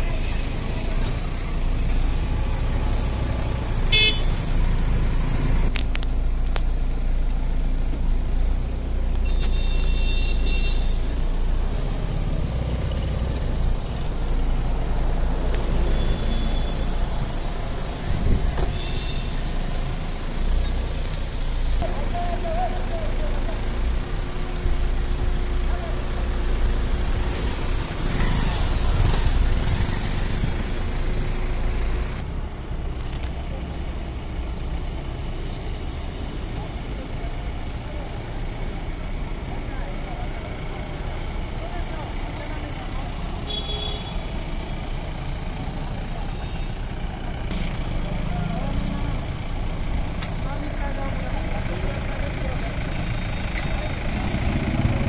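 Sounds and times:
vehicles passing: 0.0 - 55.0.

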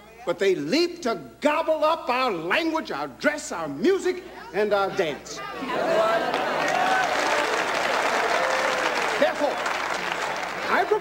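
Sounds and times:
congregation applauding: 6.0 - 11.0.

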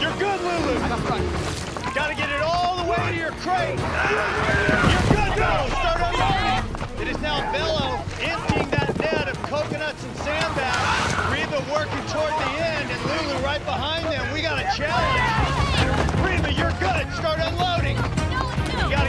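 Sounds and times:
background music: 0.0 - 19.0
people shouting: 1.8 - 9.1, 10.3 - 13.4, 14.0 - 17.3.

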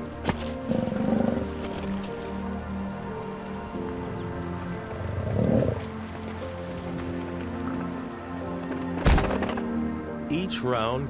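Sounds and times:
muskox growls: 0.6 - 1.7, 5.0 - 5.9.

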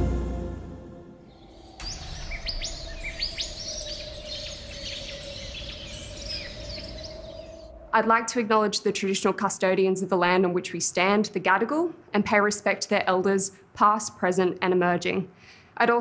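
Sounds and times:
music: 0.0 - 1.3
birds chirping: 1.2 - 8.2.

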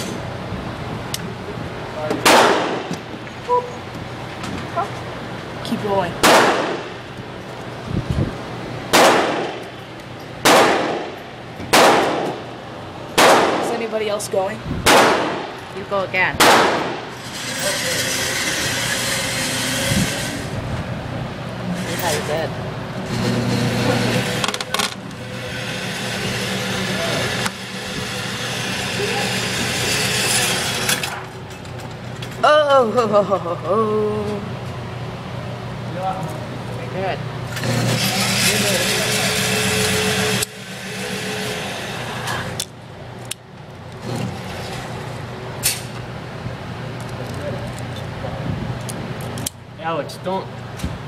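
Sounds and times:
steady background hum: 0.0 - 51.0
gunshots: 2.2 - 2.9, 6.2 - 6.9, 8.9 - 9.6, 10.4 - 11.1, 11.7 - 12.4, 13.2 - 13.7, 14.9 - 15.5, 16.4 - 17.0
pistol shots with echo: 6.2 - 6.8, 8.9 - 9.5, 10.4 - 11.1, 11.7 - 12.3, 13.2 - 13.7, 14.9 - 15.4, 16.4 - 17.0.

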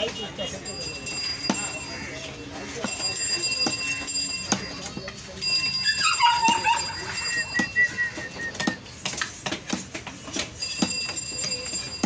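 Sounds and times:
dog whining: 5.8 - 8.5.

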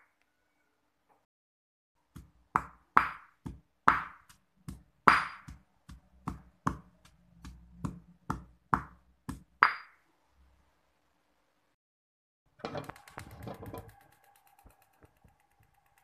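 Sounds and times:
stone pestle pounding in mortar: 2.1 - 9.9.

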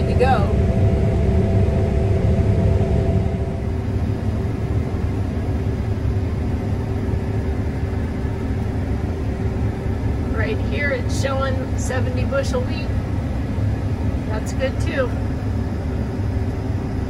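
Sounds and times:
combine harvester rumbling: 0.0 - 17.0.

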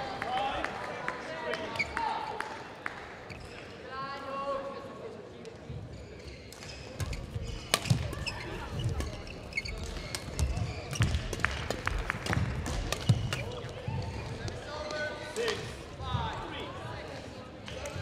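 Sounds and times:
voices in a hall: 0.0 - 18.0
rackets striking shuttlecock: 6.6 - 9.2, 9.8 - 13.6.

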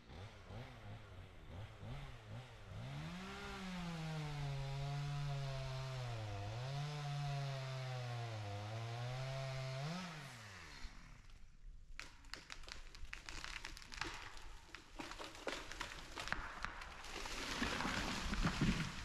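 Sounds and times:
distant chainsaw revving: 0.0 - 11.4.

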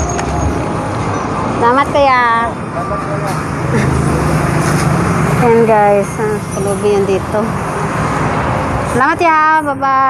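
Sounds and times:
road traffic: 0.0 - 10.0
vehicle engine humming: 0.0 - 10.0.

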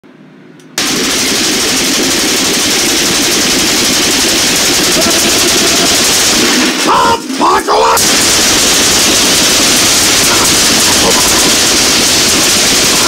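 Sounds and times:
dense rapid crackling and popping: 0.8 - 13.0.

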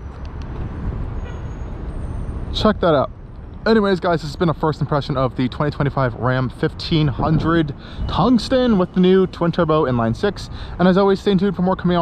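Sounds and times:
traffic rumble and hiss: 0.0 - 12.0.

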